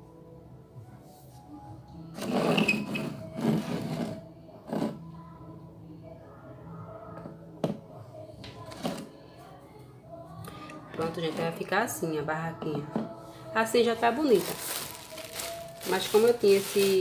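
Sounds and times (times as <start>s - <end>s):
faint background music: 0.0s - 17.0s.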